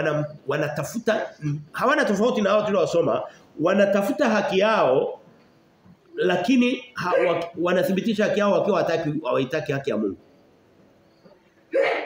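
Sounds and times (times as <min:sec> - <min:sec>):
man speaking: 0:00.0 - 0:05.2, 0:06.1 - 0:10.2.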